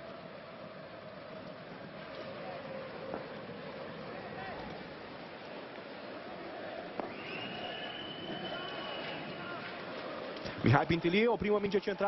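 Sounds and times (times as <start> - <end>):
stadium crowd noise: 0.0 - 12.0
long high whistle: 7.0 - 9.6.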